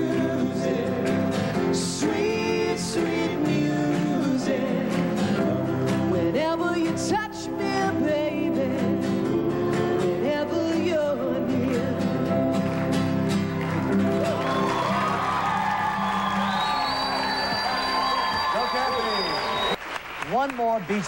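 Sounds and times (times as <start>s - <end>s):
harmony vocal group singing: 0.0s - 12.5s
strummed acoustic guitar: 0.0s - 15.0s
piano: 0.0s - 18.9s
crowd cheering and applauding: 12.3s - 21.0s.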